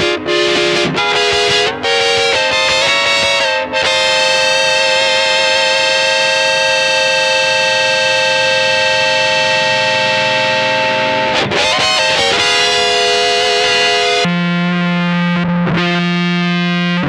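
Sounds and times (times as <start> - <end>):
fuzzed electric guitar chords: 0.0 - 17.0.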